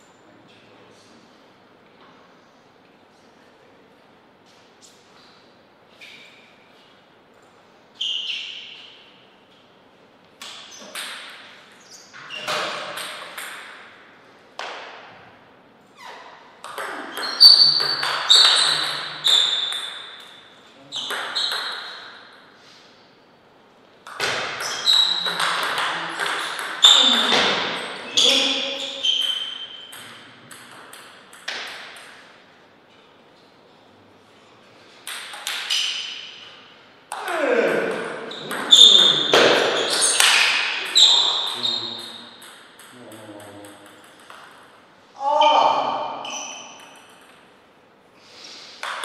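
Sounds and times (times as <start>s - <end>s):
table tennis ball bouncing: 10.4s - 11.8s, 12.4s - 15.1s, 16.6s - 22.4s, 24.0s - 32.4s, 35.0s - 44.9s, 46.1s - 47.6s, 48.8s - 49.0s.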